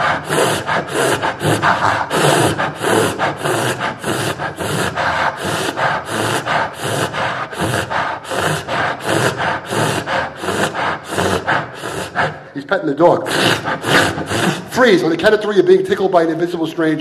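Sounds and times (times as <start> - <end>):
man panting like a dog: 0.0 - 15.1.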